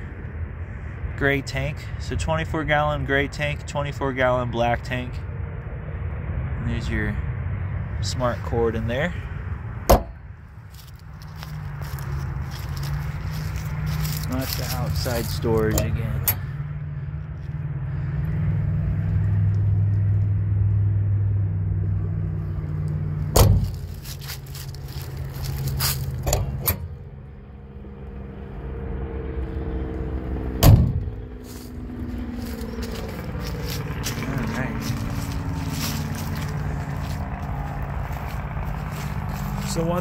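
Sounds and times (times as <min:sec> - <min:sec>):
vehicle engine running: 0:00.0 - 0:40.0
loud thumps: 0:09.8 - 0:10.2, 0:23.3 - 0:23.9, 0:30.6 - 0:31.2.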